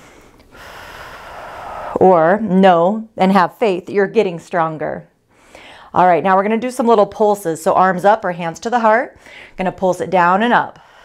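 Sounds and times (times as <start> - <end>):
woman inhaling: 0.0 - 2.0, 5.3 - 6.0, 9.2 - 9.6, 10.8 - 11.0.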